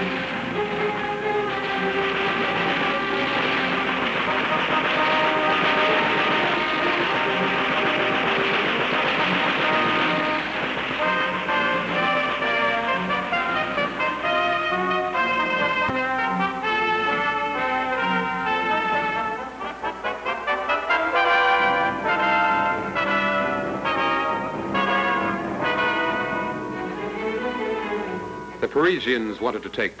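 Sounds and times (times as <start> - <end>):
orchestral music with brass: 0.0 - 29.8.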